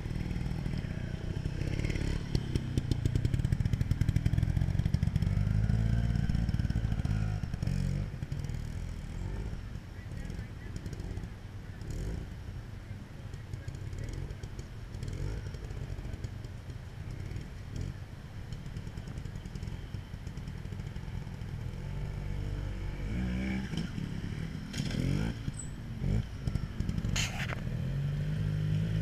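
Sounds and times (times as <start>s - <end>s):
motorcycle engine revving: 0.0s - 12.4s, 13.2s - 29.0s.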